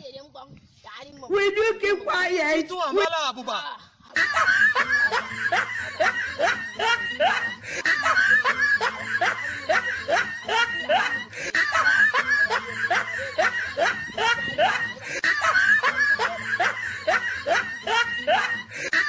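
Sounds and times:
person laughing: 4.2s - 19.0s.

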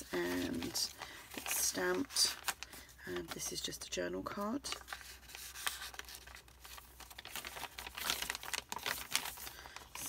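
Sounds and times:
page flipping: 0.0s - 3.4s, 4.7s - 10.0s
paper rustling and crinkling: 0.0s - 3.7s, 4.3s - 10.0s.

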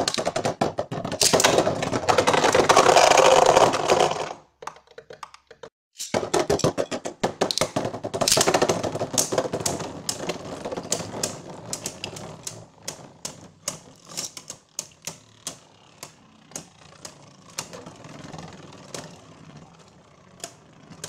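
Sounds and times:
spinning tops clashing plastic clicks: 6.0s - 10.2s.

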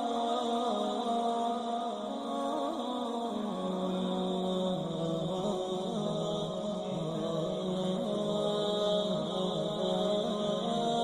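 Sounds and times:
slow chant-like music: 0.0s - 11.0s.

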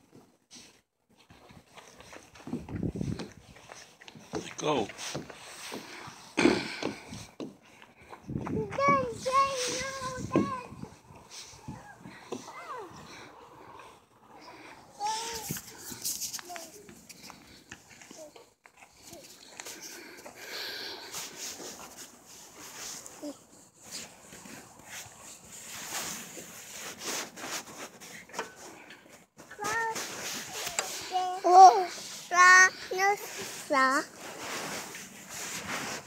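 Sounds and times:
rustling and handling noise: 0.0s - 36.0s.

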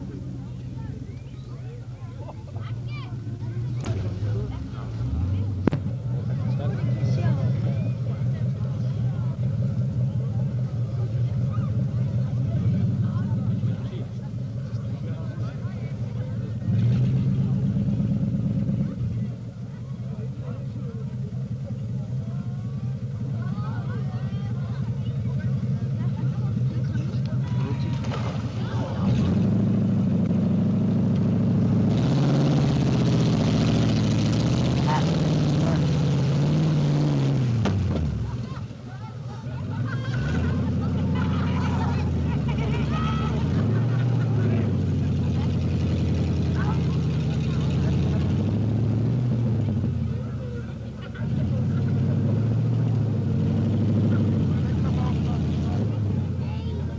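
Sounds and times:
crowd voices: 0.0s - 56.9s
off-road vehicle engine revving: 0.0s - 56.9s.

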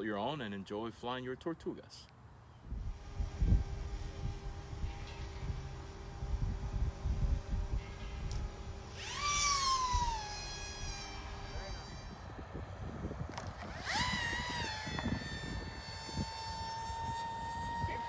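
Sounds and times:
wind rumbling on microphone: 2.6s - 18.0s
model plane motor whining: 2.7s - 18.0s.

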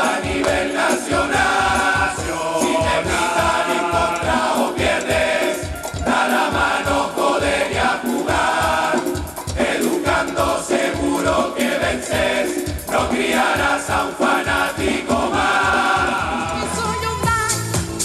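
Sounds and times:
male chorus singing in unison: 0.0s - 16.6s
steady percussion beat: 0.0s - 18.0s.

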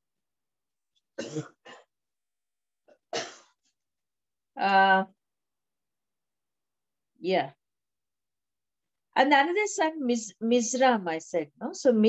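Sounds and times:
woman coughing: 1.2s - 1.8s, 3.2s - 3.5s.

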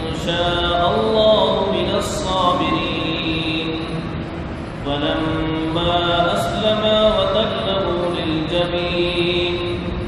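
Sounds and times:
man chanting melodically: 0.0s - 4.2s, 4.8s - 10.0s.

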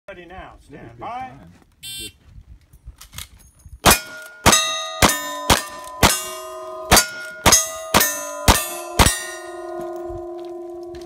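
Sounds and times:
rifle shot: 3.8s - 9.2s
steel target ringing: 3.8s - 11.0s.

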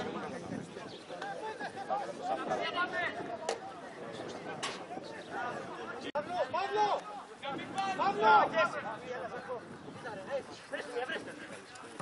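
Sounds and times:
men talking and calling out: 0.0s - 12.0s.

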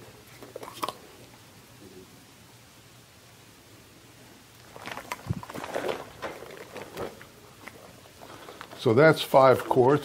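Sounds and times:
plastic crinkling and clicking: 4.6s - 9.9s.

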